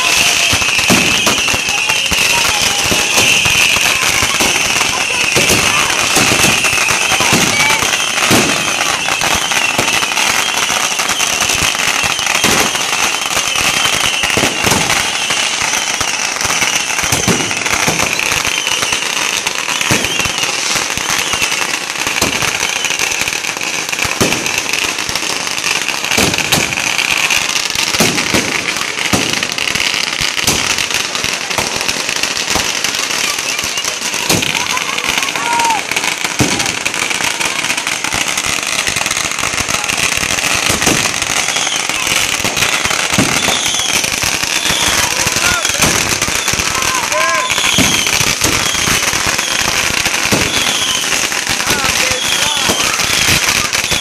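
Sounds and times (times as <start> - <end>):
firework bangs: 0.0 - 54.0
fireworks crackling: 0.0 - 54.0.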